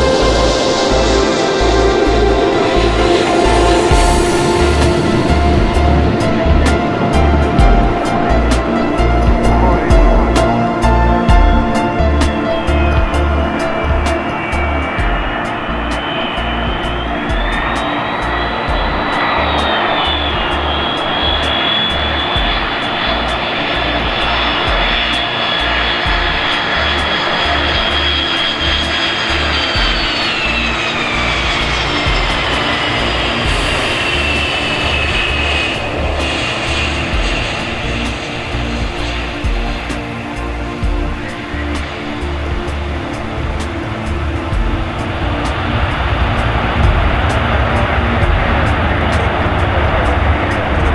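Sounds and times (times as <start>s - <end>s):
background music with steady beat: 0.0s - 50.9s
jet engines whining: 0.0s - 50.9s.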